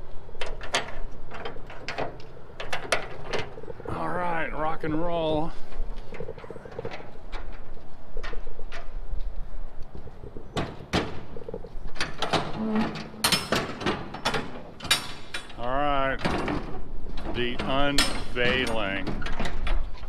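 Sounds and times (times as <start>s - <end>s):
metal latches clanking and rattling: 0.4s - 3.9s, 6.1s - 9.0s, 10.5s - 20.0s.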